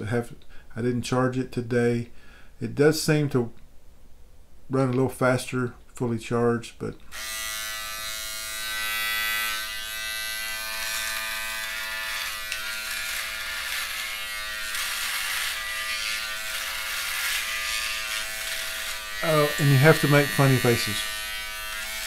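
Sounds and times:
electric shaver buzzing: 7.1s - 22.0s.

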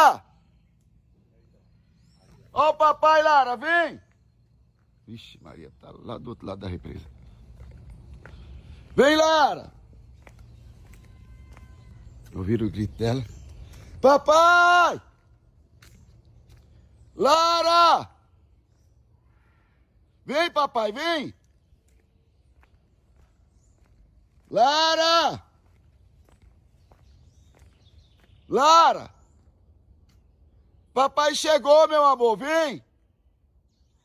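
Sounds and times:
outdoor background noise: 0.0s - 34.0s
footsteps on dirt path: 3.5s - 5.6s, 6.4s - 17.2s, 20.6s - 30.9s
faint bird screeches: 19.2s - 20.2s.

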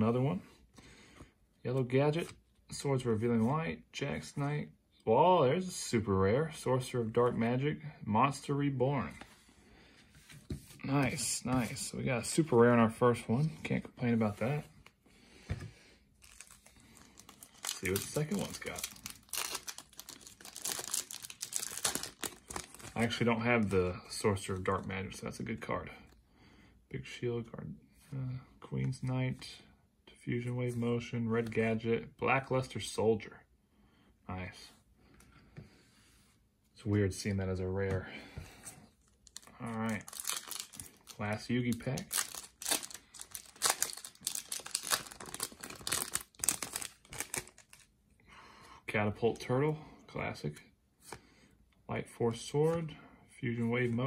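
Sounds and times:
foil wrapper tearing and crinkling: 16.2s - 23.1s, 39.3s - 41.2s, 42.0s - 47.8s.

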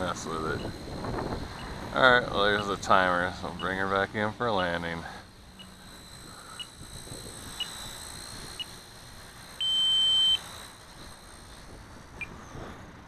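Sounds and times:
helicopter high whine: 0.0s - 13.0s
timer alarm beeps: 3.6s - 3.8s, 9.6s - 10.4s.

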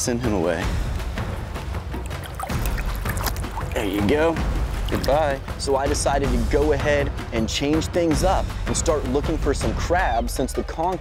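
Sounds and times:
background music: 0.0s - 11.0s
shallow water splashing: 1.4s - 6.6s.

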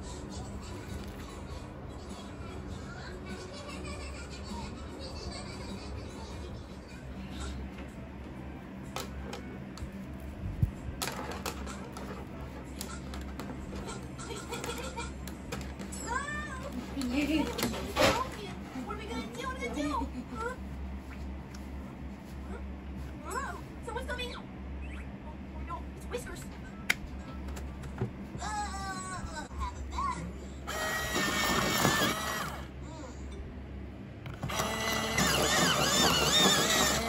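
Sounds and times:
electric pencil sharpener grinding: 30.7s - 32.7s, 34.3s - 37.0s.

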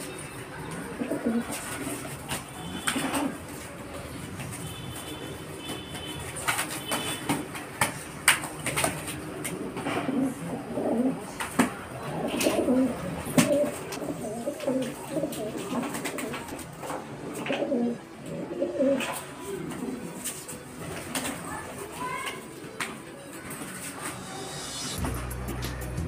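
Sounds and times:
pigeons cooing: 0.6s - 4.0s, 8.7s - 21.8s.

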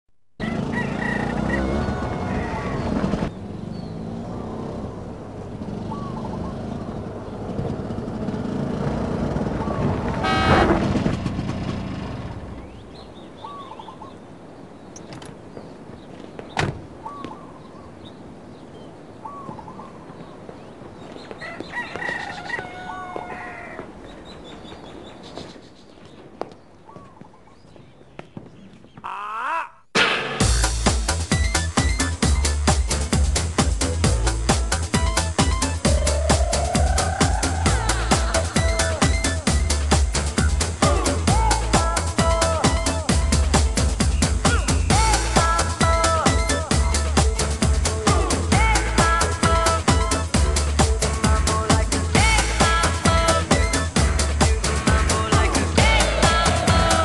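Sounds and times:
rooster crowing: 0.4s - 3.1s, 21.3s - 24.0s
drawn-out vocal cry: 29.0s - 30.0s.

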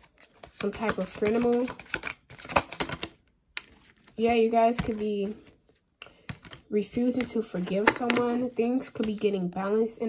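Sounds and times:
cards being shuffled: 0.0s - 8.4s.

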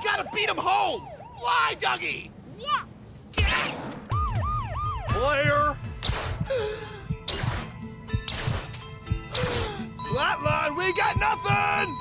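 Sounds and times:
background music: 4.1s - 12.0s
short steady beeps: 9.8s - 12.0s.

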